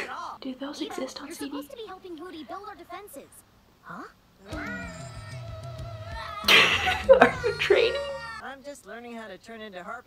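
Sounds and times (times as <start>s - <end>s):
cartoon character straining vocally: 3.8s - 8.4s
background music: 4.5s - 8.4s.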